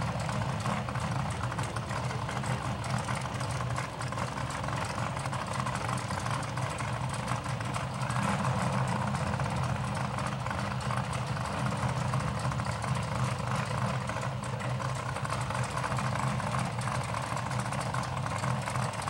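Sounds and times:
race car engines idling: 0.0 - 19.0.

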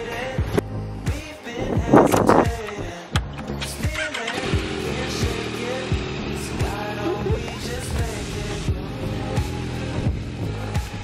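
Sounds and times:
background music with bass beat: 0.0 - 11.0
motorcycle engine idling: 2.6 - 11.0.

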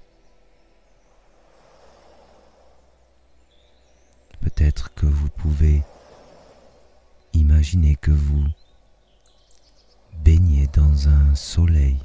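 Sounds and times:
birdsong: 0.0 - 12.0
waves washing on a shore: 1.3 - 3.4, 5.5 - 7.3.

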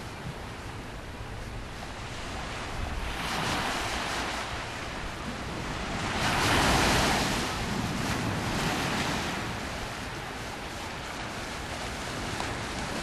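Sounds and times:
waves washing over sand and rocks: 0.0 - 13.0
surf surge: 1.6 - 13.0.

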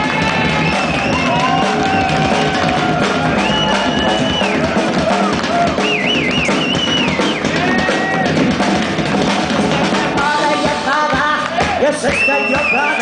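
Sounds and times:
blues band playing: 0.0 - 13.0.

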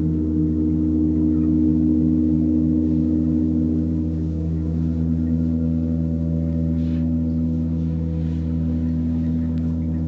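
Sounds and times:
gong ringing low drone: 0.0 - 10.0.

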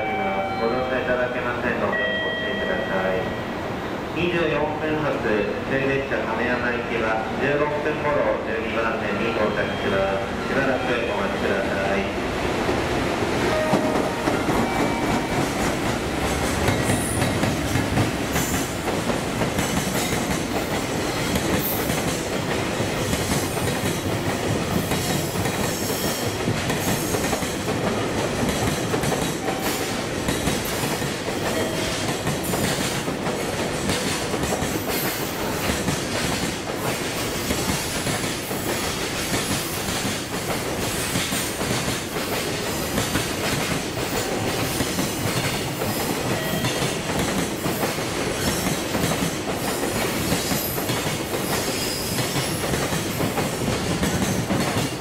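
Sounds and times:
train wheels rumbling on rails: 11.7 - 55.0.

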